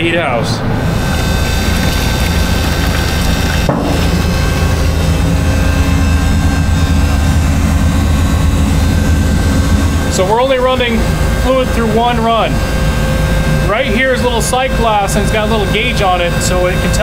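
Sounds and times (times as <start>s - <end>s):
pump motor droning: 0.0s - 17.0s.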